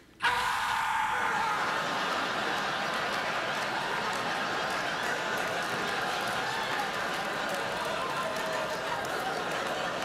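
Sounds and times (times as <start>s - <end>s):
audience applause: 1.2s - 10.0s
audience laughing: 1.2s - 10.0s.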